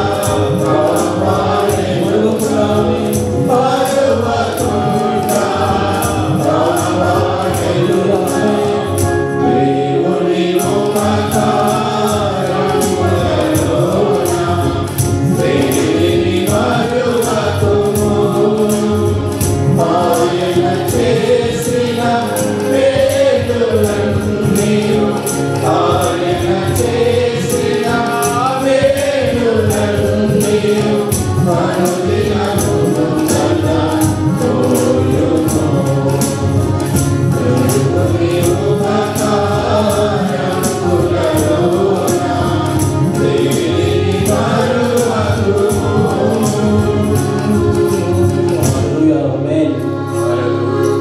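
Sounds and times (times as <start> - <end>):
choir singing through microphones: 0.0 - 51.0
music with steady beat: 0.0 - 51.0.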